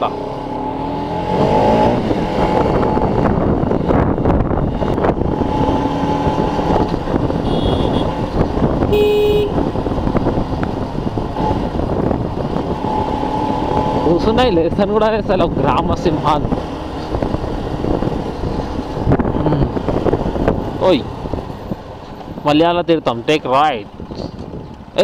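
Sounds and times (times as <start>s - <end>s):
motorcycle engine: 0.0s - 22.4s
wind on microphone: 0.9s - 22.6s, 23.8s - 25.0s
horn toot: 7.4s - 8.2s, 8.9s - 9.6s.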